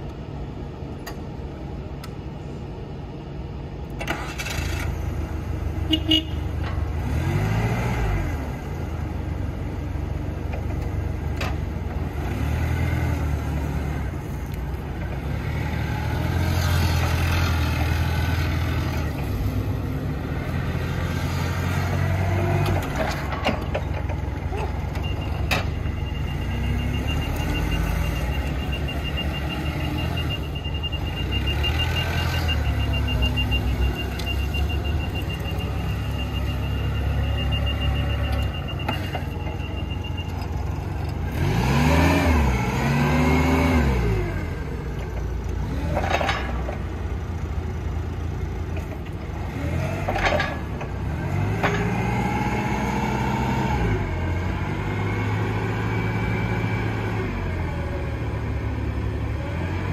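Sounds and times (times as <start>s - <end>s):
forklift engine running: 0.0s - 59.9s
engine revving: 7.0s - 8.7s, 26.1s - 45.0s, 49.3s - 59.9s
backup alarm beeping: 25.0s - 40.8s.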